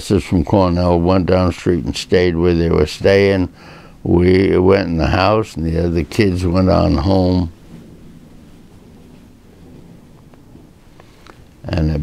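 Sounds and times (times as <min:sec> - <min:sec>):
low rumble: 0:04.0 - 0:12.0.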